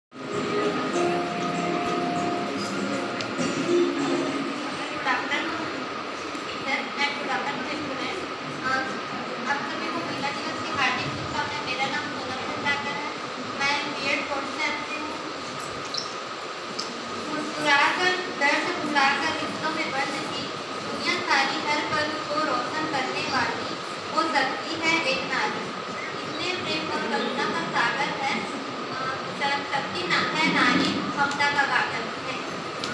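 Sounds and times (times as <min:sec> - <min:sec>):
steady background noise: 0:00.1 - 0:32.9
steady background hiss: 0:00.2 - 0:32.9
woman speaking over pa system: 0:17.3 - 0:32.6.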